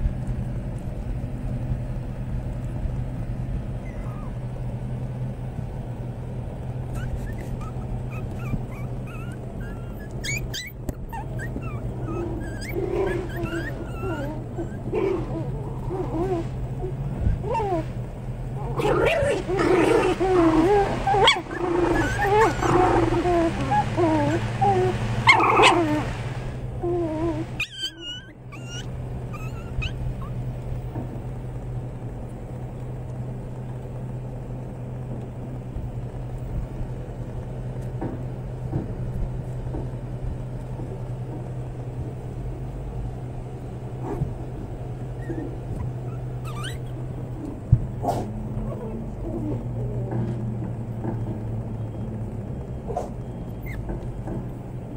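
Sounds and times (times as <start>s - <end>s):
steady low hum: 0.0s - 54.9s
puppies whimpering and growling: 3.7s - 4.7s, 6.8s - 31.2s, 43.5s - 54.9s.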